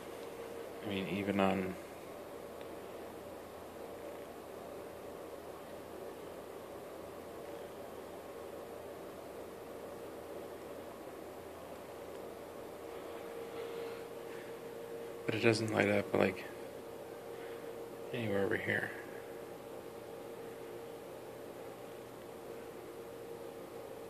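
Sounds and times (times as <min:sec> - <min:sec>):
faint steady hiss: 0:00.0 - 0:24.0
thin steady hum: 0:00.0 - 0:24.0.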